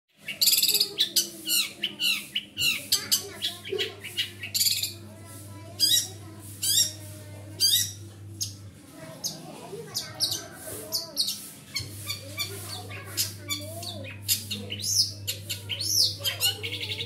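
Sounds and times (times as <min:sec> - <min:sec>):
songbird singing: 0:00.2 - 0:05.1, 0:07.6 - 0:17.0.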